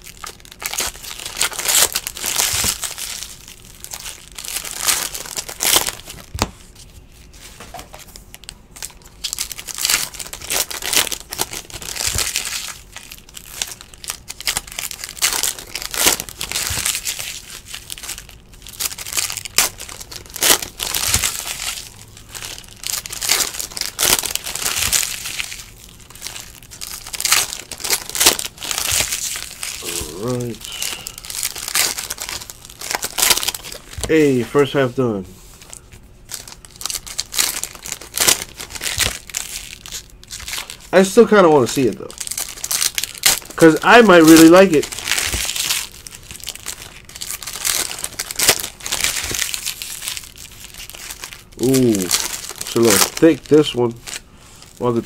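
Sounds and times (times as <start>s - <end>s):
packs tearing open: 0.0s - 6.4s, 8.3s - 34.4s, 35.6s - 55.0s
foil wrappers crinkling: 0.0s - 55.0s.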